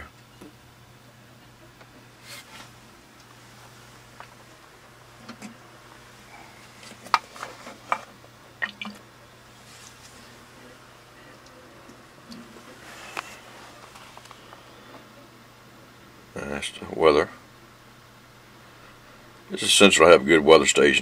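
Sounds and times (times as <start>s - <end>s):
faint low hum: 0.0s - 21.0s.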